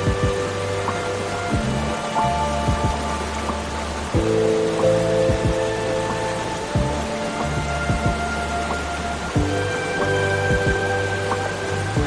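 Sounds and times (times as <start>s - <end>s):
running splashing water: 0.0s - 12.0s
slow soft piano music: 0.0s - 12.0s.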